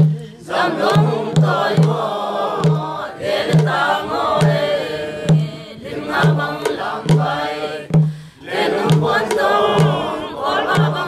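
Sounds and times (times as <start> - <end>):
group singing in unison: 0.0 - 11.0
hand drum beat: 0.0 - 11.0.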